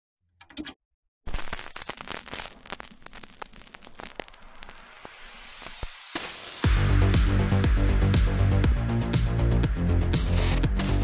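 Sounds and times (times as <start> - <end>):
film crackle pops and clicks: 1.3 - 6.6.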